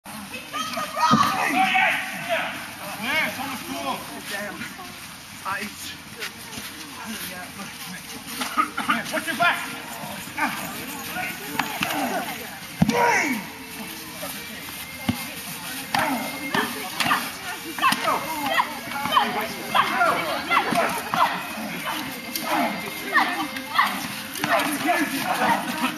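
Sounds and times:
people talking and calling out: 0.1 - 25.9.

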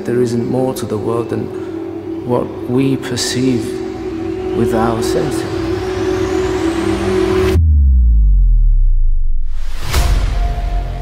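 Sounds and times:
steady droning tone: 0.0 - 11.0
deep low boom: 7.3 - 10.8.

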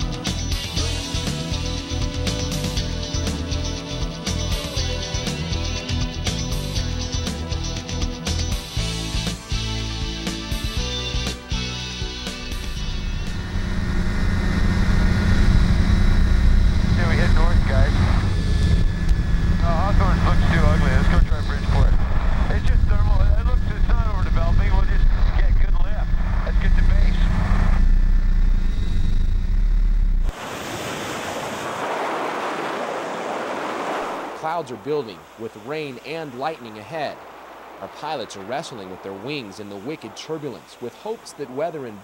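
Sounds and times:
engine and propeller drone: 0.0 - 42.0
muffled voice talking: 19.6 - 27.4
steady hiss: 34.2 - 42.0.

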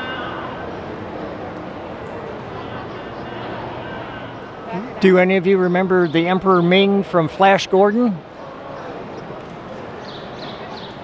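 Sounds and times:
indistinct crowd chatter: 0.0 - 11.0.

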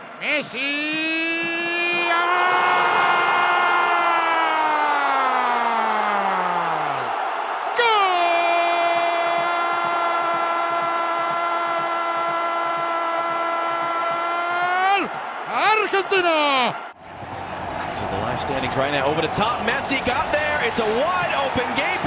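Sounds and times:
stadium crowd noise: 0.0 - 22.0
commentator shouting goal: 0.2 - 3.3, 11.2 - 16.8.

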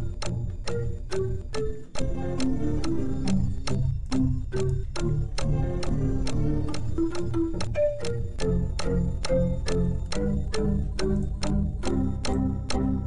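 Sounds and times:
background music with clicking beat: 0.0 - 13.0.

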